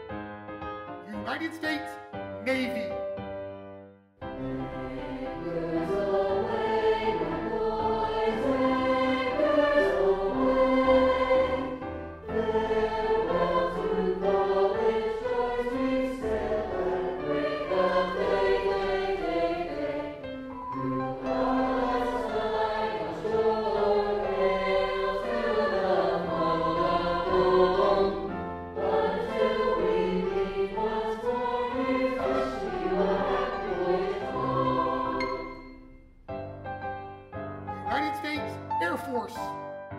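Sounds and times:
choir singing: 4.3s - 35.9s.

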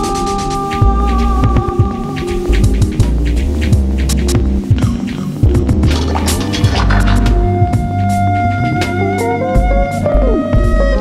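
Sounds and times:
lo-fi hip-hop beat: 0.0s - 11.0s
deep bass notes: 2.5s - 8.8s
drum hits: 4.7s - 7.9s.

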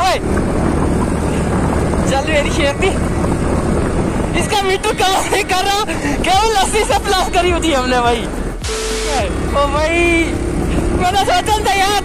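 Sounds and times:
wind and road noise: 0.0s - 12.0s
man talking: 4.3s - 12.0s.

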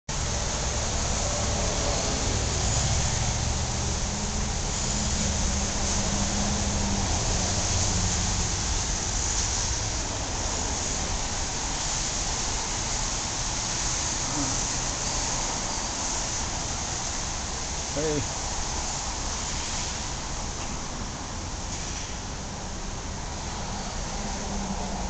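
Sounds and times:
constant hiss: 0.1s - 25.0s
engine hum: 0.1s - 25.0s
low rumble of traffic: 0.1s - 25.0s.

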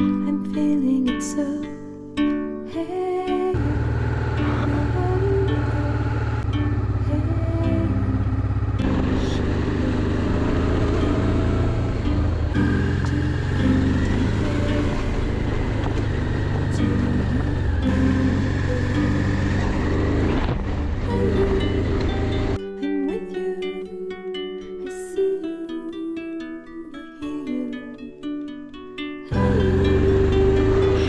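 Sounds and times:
background song: 0.0s - 20.3s, 29.2s - 31.0s
motorcycle engine running: 3.5s - 22.6s, 29.3s - 31.0s.

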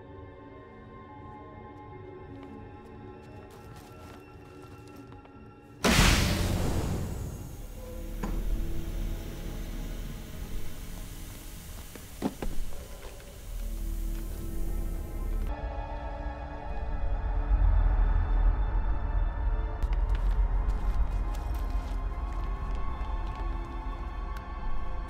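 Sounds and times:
tense film score: 0.0s - 25.0s
sudden loud hit: 5.8s - 9.0s
low rumbling drone: 5.9s - 25.0s.

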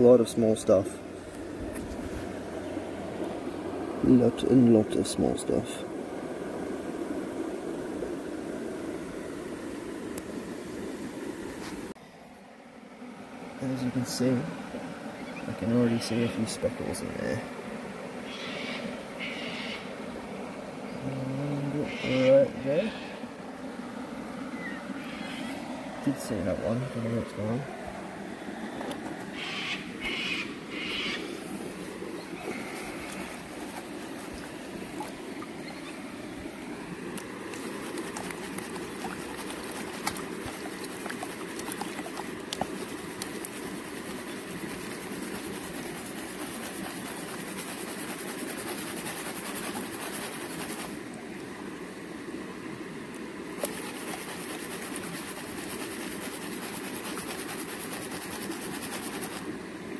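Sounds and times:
running water: 13.5s - 52.3s, 53.1s - 59.9s
pump rushing: 30.9s - 51.0s, 53.5s - 59.6s.

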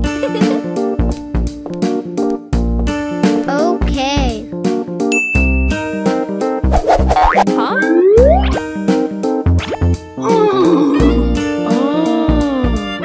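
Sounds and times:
bouncy children's music: 0.0s - 2.0s
bright ding: 5.1s - 6.0s.

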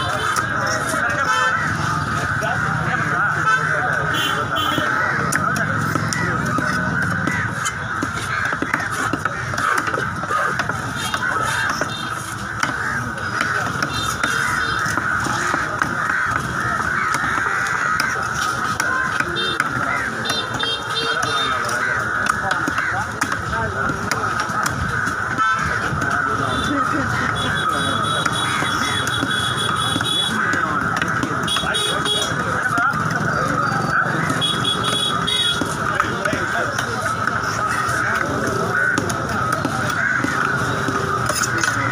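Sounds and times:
crows cawing: 0.0s - 41.9s
many voices talking: 0.0s - 41.9s.

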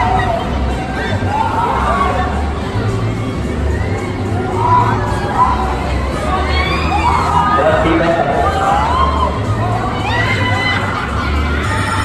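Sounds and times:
riders screaming and shouting: 0.0s - 12.0s.

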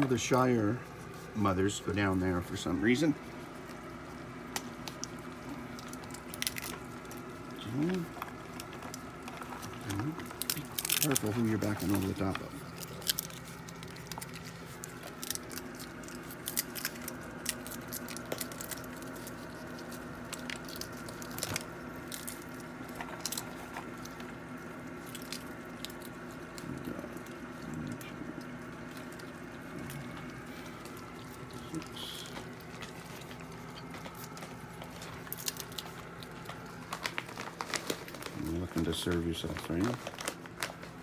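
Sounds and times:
steady low hum: 0.0s - 41.0s
peanut shells cracking and chewing: 3.4s - 41.0s.

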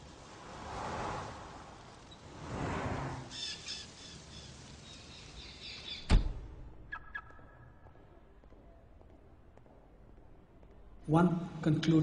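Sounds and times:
birds chirping: 3.1s - 10.1s.

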